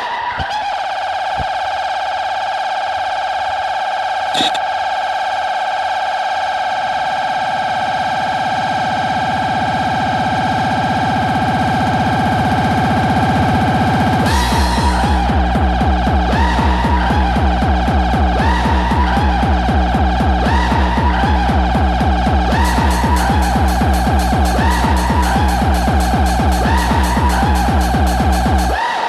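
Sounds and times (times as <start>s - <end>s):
brief blip: 4.4s - 4.7s
held synthesizer note: 4.4s - 4.7s
low buzzing synth layer: 4.4s - 28.8s.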